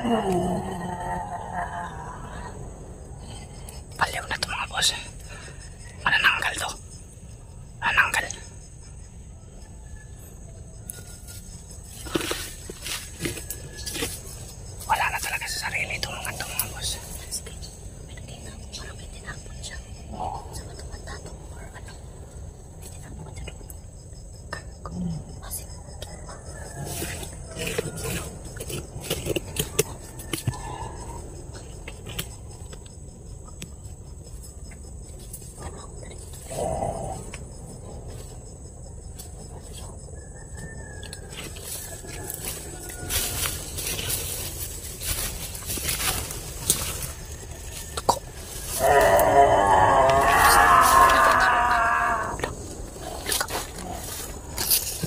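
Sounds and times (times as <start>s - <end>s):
high-pitched insect drone: 0.0s - 29.0s, 29.6s - 55.0s
rustling through dry leaves: 42.2s - 49.1s.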